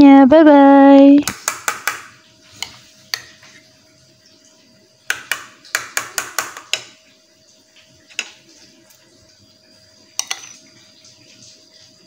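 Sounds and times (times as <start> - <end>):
metal spoon clinking in bowl: 10.2 - 10.6.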